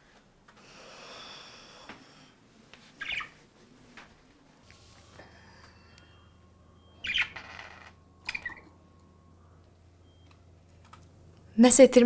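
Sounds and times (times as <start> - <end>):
budgerigar chirping: 3.0 - 3.4, 7.0 - 8.7.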